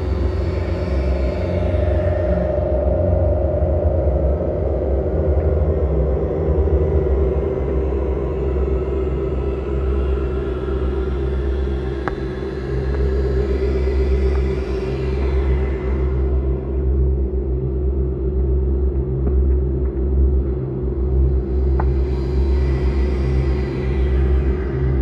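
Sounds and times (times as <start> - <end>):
ambient electronic drone music: 0.0 - 25.0.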